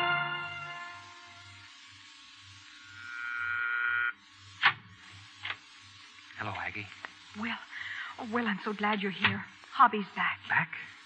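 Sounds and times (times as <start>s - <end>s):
orchestral held chord: 0.0s - 1.4s.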